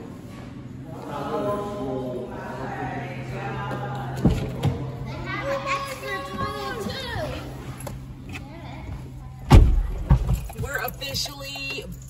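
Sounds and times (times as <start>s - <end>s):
children's voices: 4.6s - 9.5s.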